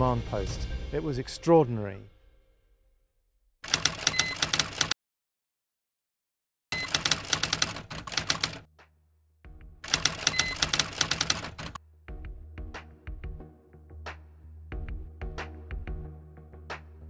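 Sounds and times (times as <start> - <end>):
typewriter key clicks: 9.9 - 11.8.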